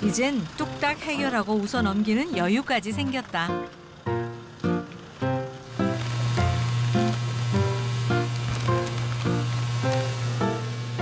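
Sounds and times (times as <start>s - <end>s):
background music: 0.0s - 11.0s
washing machine motor hum: 0.0s - 11.0s
spraying water hiss: 5.6s - 11.0s.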